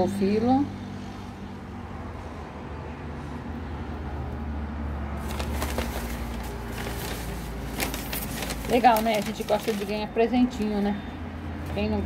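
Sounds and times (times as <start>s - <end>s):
packing paper rustling: 5.2s - 10.1s.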